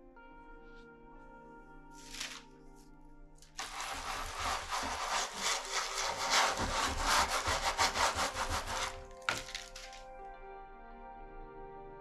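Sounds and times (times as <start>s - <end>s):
baren rubbing over paper: 3.6s - 10.0s.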